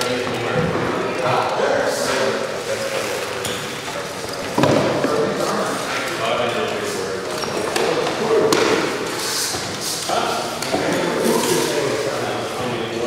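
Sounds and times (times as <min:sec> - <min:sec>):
indistinct voices talking: 0:00.0 - 0:13.0.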